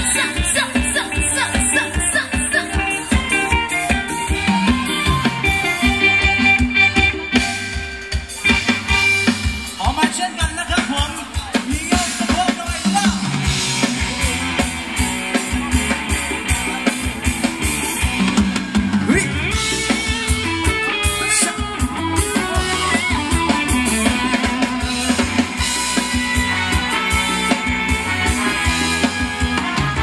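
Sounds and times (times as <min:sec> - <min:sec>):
drum kit beat: 0:00.0 - 0:30.0
live band amplified music: 0:00.0 - 0:30.0.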